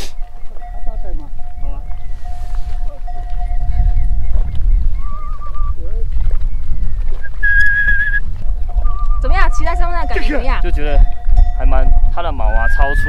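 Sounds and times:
wind rumble on microphone: 0.0s - 13.0s
man whistling: 1.9s - 6.0s, 7.2s - 9.2s, 12.4s - 13.0s.

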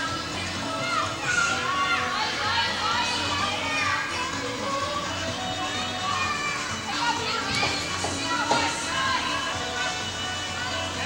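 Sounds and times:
background music: 0.0s - 11.0s
high-pitched voices shouting: 0.0s - 11.0s.

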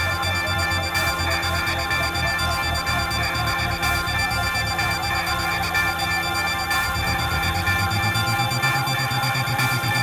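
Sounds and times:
layered high tones: 0.0s - 10.0s
pulsing low throb: 0.0s - 10.0s.

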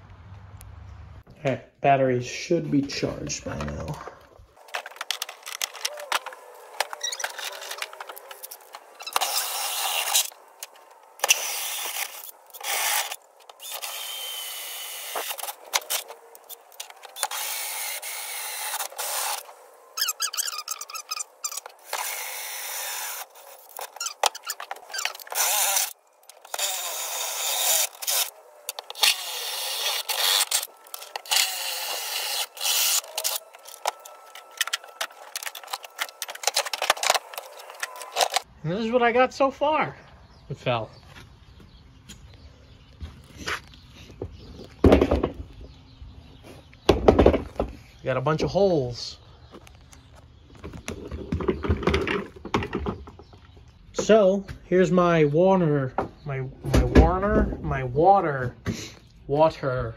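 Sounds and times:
drill hole saw cutting plastic: 4.6s - 38.5s.

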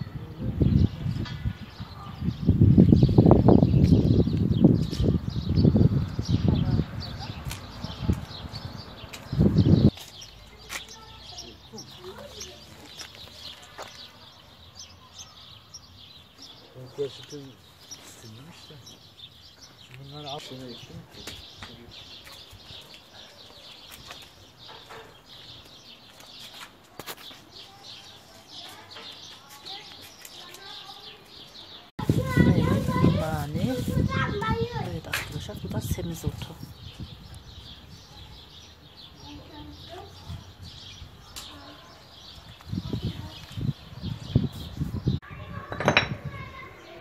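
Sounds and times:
low rumbling microphone noise: 0.0s - 9.9s, 32.0s - 39.1s, 42.1s - 46.7s
small birds chirping: 0.0s - 47.0s.

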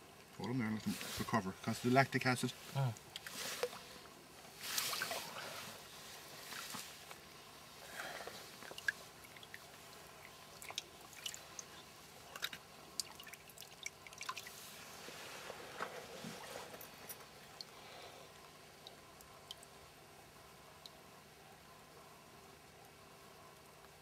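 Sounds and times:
water swirling: 2.6s - 15.5s
water dripping: 8.5s - 14.6s, 16.4s - 20.0s, 20.6s - 21.1s.

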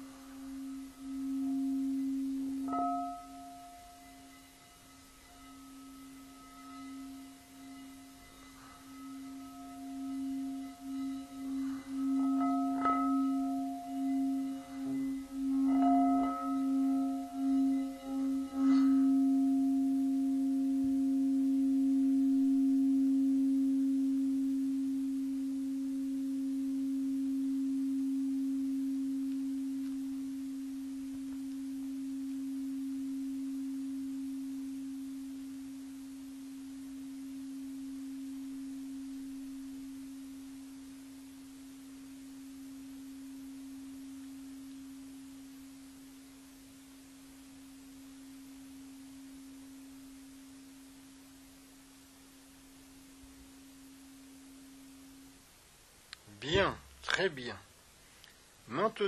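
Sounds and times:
singing bowl ringing: 0.0s - 55.8s.

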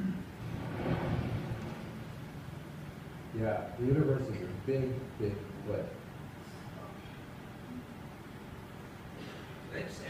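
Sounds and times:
low soundtrack rumble over loudspeakers: 0.0s - 10.0s.

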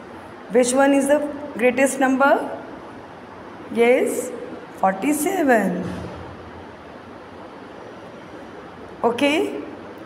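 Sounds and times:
low hiss and rumble: 0.0s - 10.0s.

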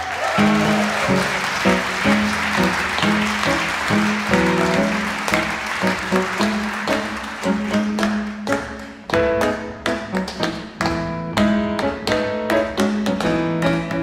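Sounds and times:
grand piano: 0.0s - 14.0s
jazz ensemble music: 0.2s - 14.0s.

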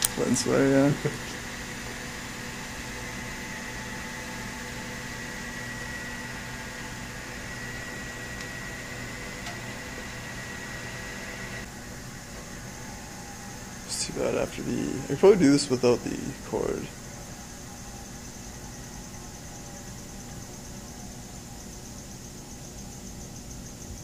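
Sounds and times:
electric motor low hum: 0.0s - 24.0s
thin high whine: 0.0s - 24.0s.

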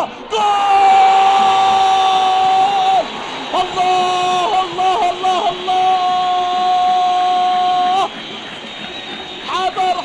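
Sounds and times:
commentator shouting goal cry: 0.0s - 8.1s
crowd noise: 0.0s - 10.0s.

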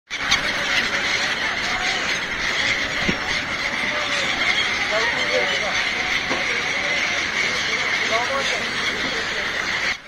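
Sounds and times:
flock of gulls calling: 0.1s - 10.0s.

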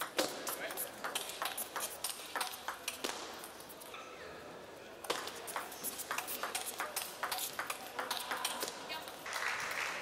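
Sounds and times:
table tennis ball clicking: 0.0s - 3.2s, 5.1s - 8.7s.

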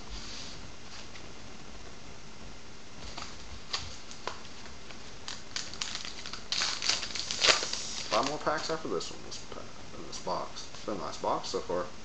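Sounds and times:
card pack wrapper crinkling: 3.1s - 8.8s.

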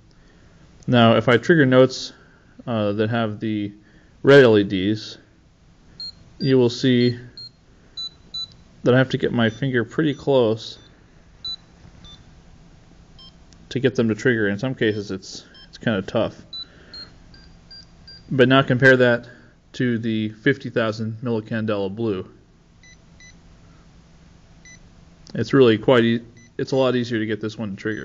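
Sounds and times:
electronic square-wave beeps: 6.0s - 12.3s, 13.2s - 13.4s, 14.9s - 15.8s, 16.4s - 18.4s.

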